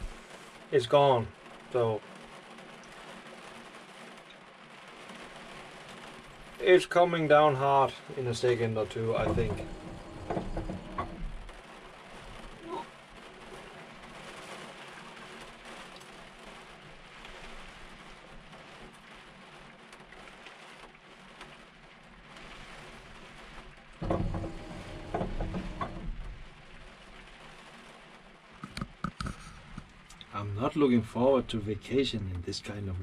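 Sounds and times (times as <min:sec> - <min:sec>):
rain on glass and roof: 0:00.0 - 0:33.0
low rumbling sound: 0:08.3 - 0:11.6, 0:24.0 - 0:26.8.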